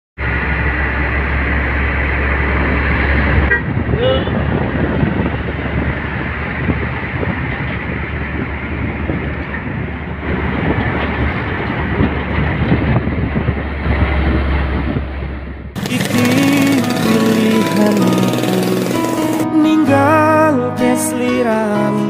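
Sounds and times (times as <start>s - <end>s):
truck engine rumbling: 0.2s - 20.1s
truck horn toot: 3.4s - 3.8s.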